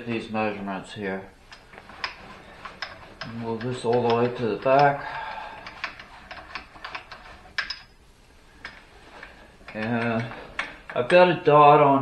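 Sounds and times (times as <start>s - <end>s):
handwheel cranking clicks: 1.5s - 7.9s, 8.6s - 11.3s.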